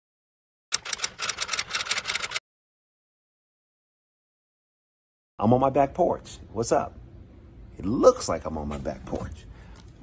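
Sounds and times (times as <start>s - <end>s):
rapid crackling clicks: 0.7s - 2.4s.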